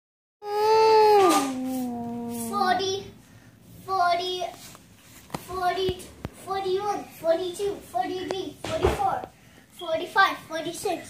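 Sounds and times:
child holding vocal tone: 0.4 - 3.2.

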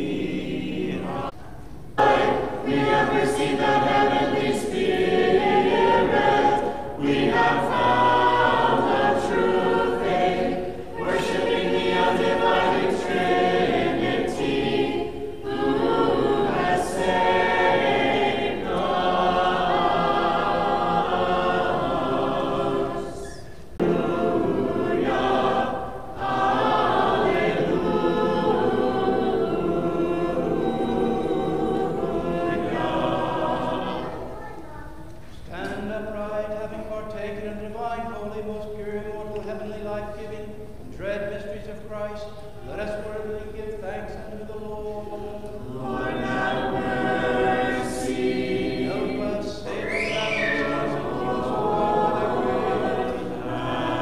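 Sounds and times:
choir singing unaccompanied hymn: 0.0 - 54.0.

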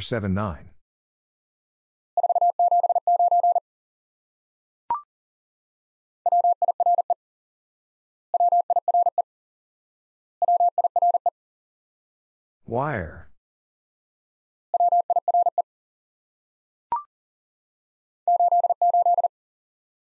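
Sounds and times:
morse code tone: 2.2 - 3.6.

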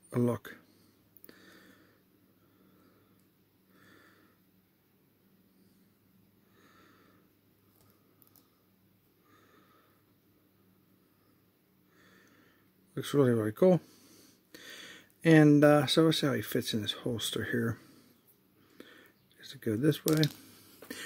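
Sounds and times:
faint low hum: 0.0 - 21.0
faint breaths: 0.5 - 4.6, 5.4 - 12.9, 13.6 - 15.2, 16.9 - 19.5, 20.2 - 21.0.

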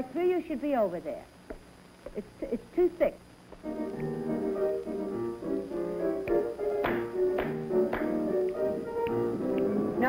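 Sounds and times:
piano playing chords: 3.6 - 10.0.

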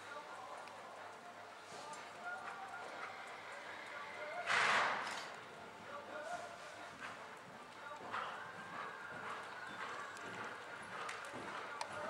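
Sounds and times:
horse hoofbeats on sand: 8.0 - 12.0.

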